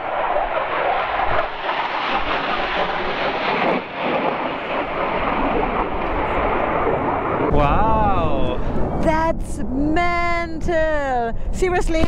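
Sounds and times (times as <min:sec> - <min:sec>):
jet fighter roar overhead: 0:00.0 - 0:10.4.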